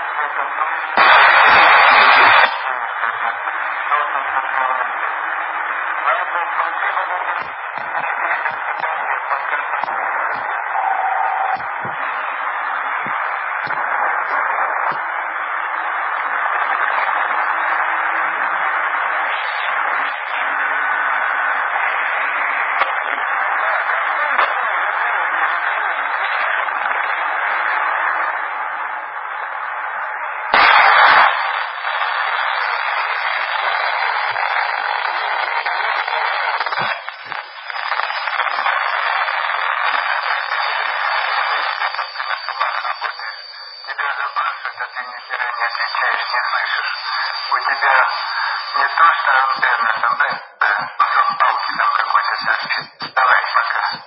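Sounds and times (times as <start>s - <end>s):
radio static hiss: 0.0s - 54.0s.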